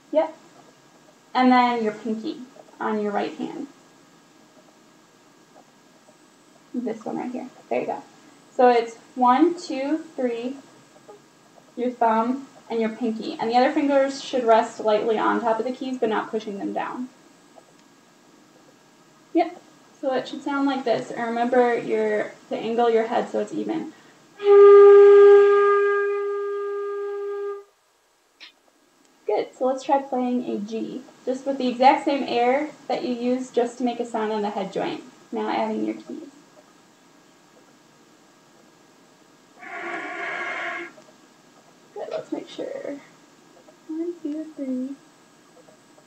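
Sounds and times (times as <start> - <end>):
faint steady hiss: 0.0 - 46.0
breathy flute note: 24.4 - 27.7, 39.6 - 40.9.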